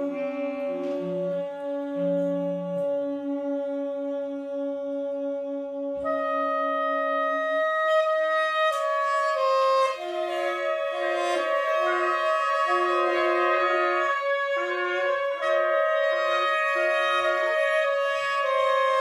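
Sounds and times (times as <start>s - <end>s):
big band horn section chords: 0.0s - 19.0s.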